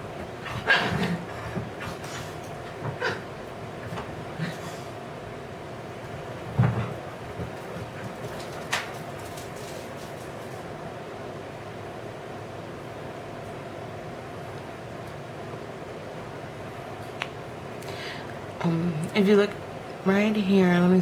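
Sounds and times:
steady background hum: 0.0 - 21.0.

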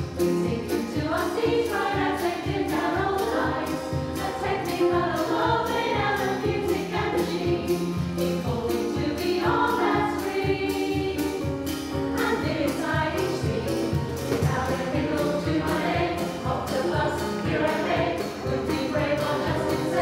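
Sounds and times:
keyboard: 0.0 - 20.0
mixed choir singing: 0.1 - 20.0.

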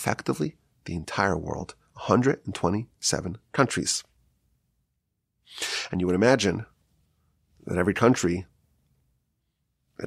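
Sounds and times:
man speaking: 0.0 - 4.2, 5.6 - 6.8, 7.6 - 8.6
man's sharp intake of breath: 5.4 - 6.0.

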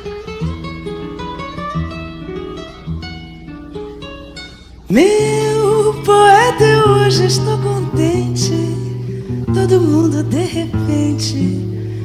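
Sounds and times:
acoustic guitar plucking: 0.0 - 12.0.

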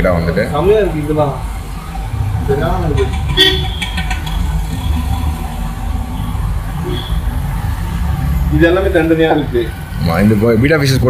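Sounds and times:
road traffic: 0.0 - 11.0
vehicle horn tooting: 3.0 - 4.4, 6.8 - 7.4.

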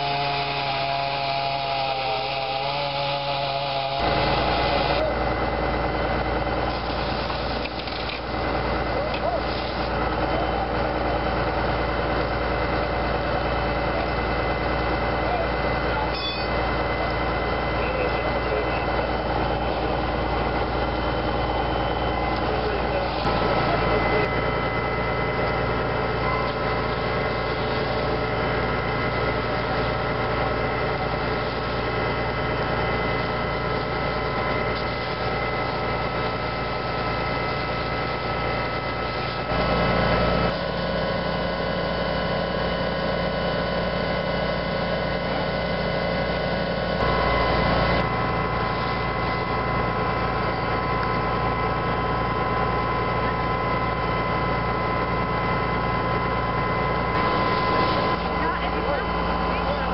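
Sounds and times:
fire engine motor running: 0.0 - 59.9.

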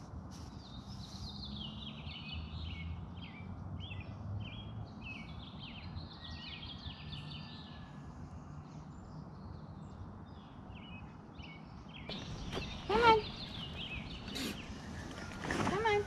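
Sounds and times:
outdoor background noise: 0.0 - 16.0
songbird chirping: 0.3 - 16.0.

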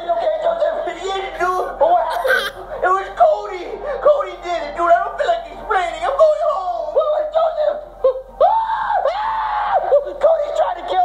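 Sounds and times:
high falsetto voice screaming: 1.4 - 2.6
short cry: 1.4 - 2.6.

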